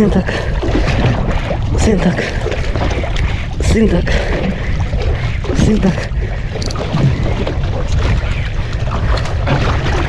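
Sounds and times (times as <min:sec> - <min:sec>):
water washing against boat: 0:00.0 - 0:10.0
wind buffeting microphone: 0:00.0 - 0:10.0.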